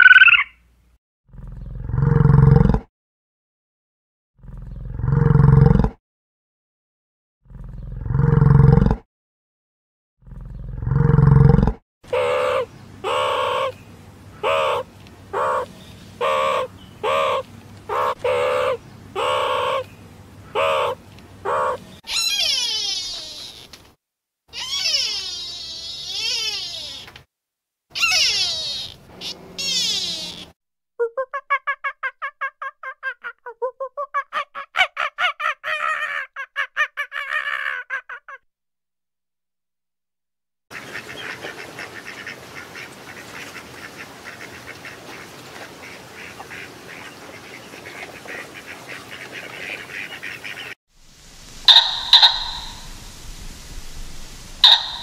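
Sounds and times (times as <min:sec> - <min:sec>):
long gliding animal calls: 0:00.0 - 0:00.6, 0:12.1 - 0:13.8, 0:14.4 - 0:19.9, 0:20.5 - 0:23.8, 0:24.5 - 0:27.1, 0:27.9 - 0:34.5, 0:51.1 - 0:55.0
short animal calls: 0:00.0 - 0:00.6, 0:14.4 - 0:19.9, 0:20.6 - 0:23.8, 0:24.5 - 0:27.1, 0:27.9 - 0:30.6, 0:51.4 - 0:55.0
fast chattering pulses: 0:51.6 - 0:53.0, 0:54.6 - 0:55.0.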